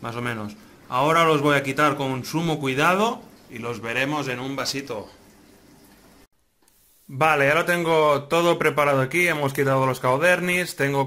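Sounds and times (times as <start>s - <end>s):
aquarium water flow hiss: 0.0s - 11.0s.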